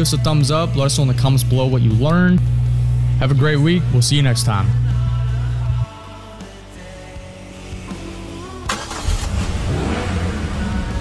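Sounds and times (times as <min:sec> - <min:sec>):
car engine starting and revving: 0:08.5 - 0:11.0.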